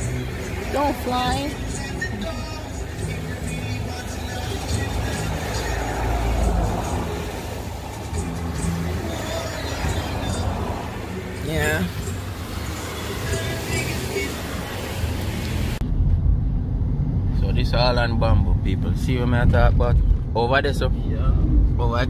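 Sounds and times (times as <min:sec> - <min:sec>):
music playing: 0:00.0 - 0:15.8
car road and engine rumble: 0:00.0 - 0:22.0.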